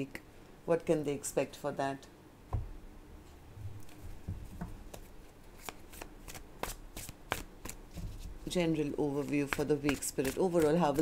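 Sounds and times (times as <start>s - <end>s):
cards being shuffled: 4.9s - 8.5s, 9.1s - 11.0s.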